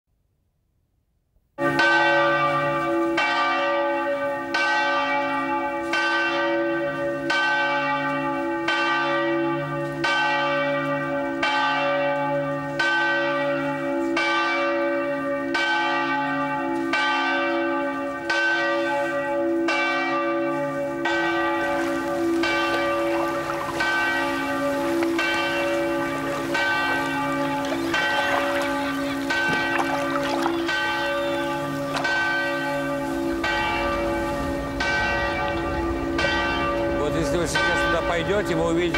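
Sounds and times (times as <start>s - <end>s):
bells ringing: 1.6s - 38.9s.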